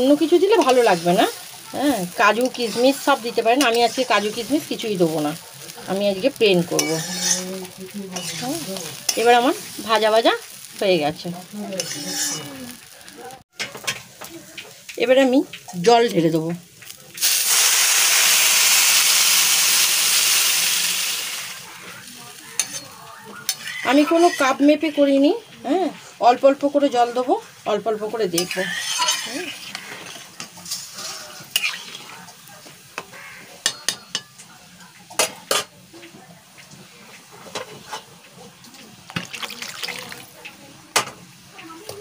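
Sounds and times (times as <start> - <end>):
water sizzling in a hot pan: 0.0 - 42.0
metal spatula clinking on pan: 6.7 - 7.5, 22.6 - 24.4, 28.4 - 30.2, 33.6 - 34.4.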